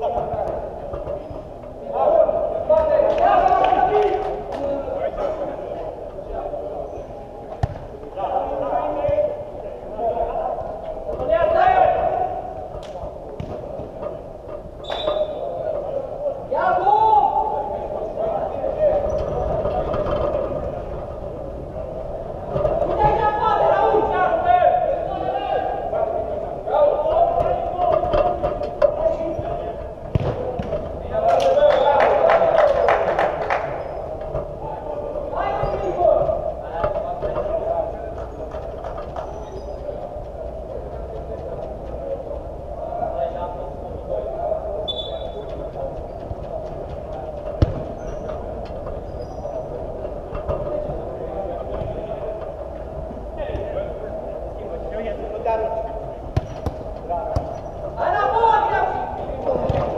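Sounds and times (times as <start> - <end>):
ball kicked thud: 7.6 - 7.9, 30.1 - 30.7.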